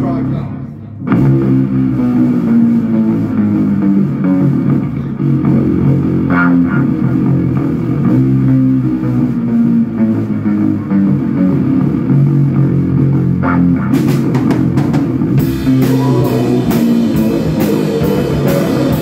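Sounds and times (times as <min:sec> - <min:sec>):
electric guitar slow riff: 0:00.0 - 0:19.0.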